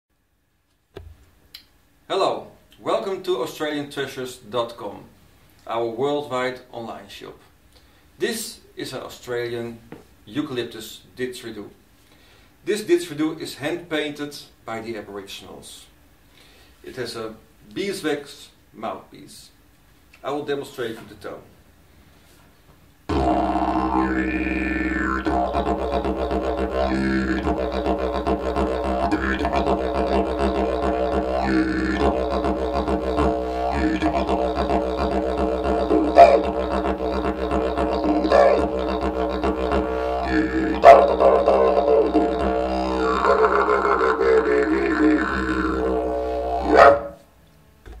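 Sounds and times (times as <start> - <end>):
didgeridoo low drone: 23.1 - 47.1.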